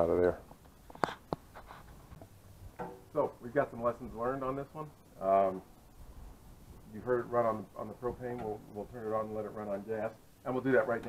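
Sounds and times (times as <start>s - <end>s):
man speaking: 0.0s - 0.4s, 3.1s - 5.7s, 6.9s - 11.0s.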